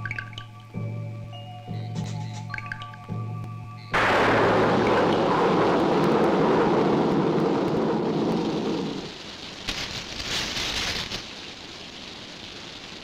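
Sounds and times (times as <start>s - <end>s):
thunder rumbling: 3.9s - 9.6s
heavy rain hissing: 3.9s - 13.0s.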